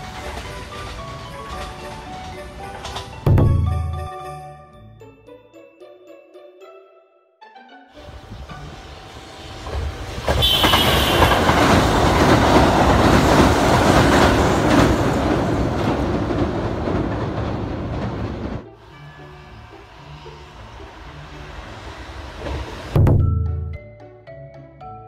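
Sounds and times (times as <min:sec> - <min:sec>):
train wheels clattering on rails: 0:00.0 - 0:04.3, 0:08.3 - 0:18.7, 0:20.2 - 0:23.7.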